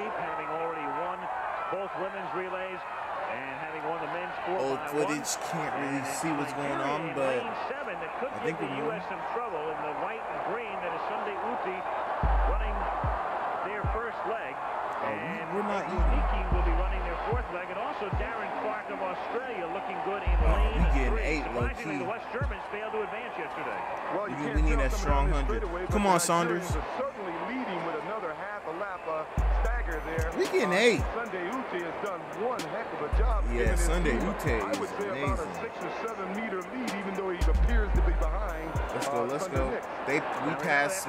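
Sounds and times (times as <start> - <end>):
voices: 0.0 - 41.0
music: 4.9 - 41.0
man speaking: 8.3 - 9.0, 15.0 - 17.4, 20.3 - 22.4, 24.3 - 26.9, 30.0 - 31.2, 33.1 - 41.0.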